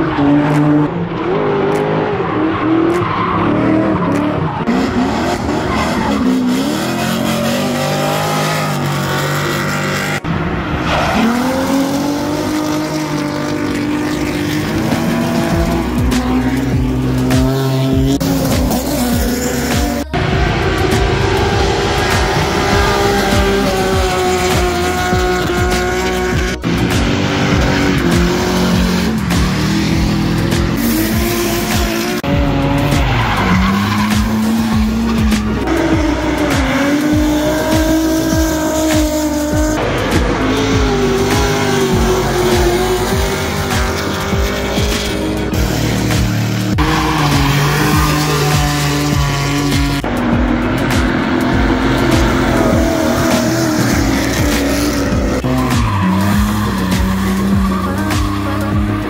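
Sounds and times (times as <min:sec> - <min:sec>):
car engines revving hard: 0:00.0 - 0:59.0
tyres screeching: 0:01.7 - 0:59.0.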